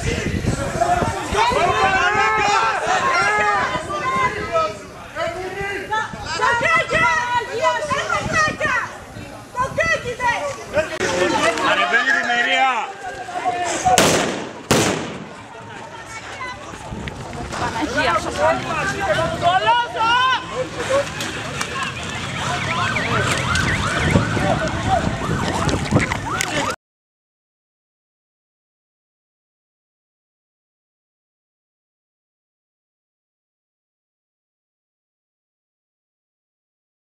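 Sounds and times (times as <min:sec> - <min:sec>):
people shouting and yelling: 0:00.0 - 0:26.8.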